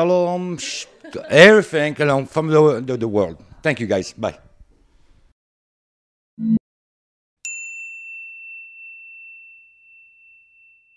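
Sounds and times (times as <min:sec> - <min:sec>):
high bell-like ding: 0:07.4 - 0:10.9.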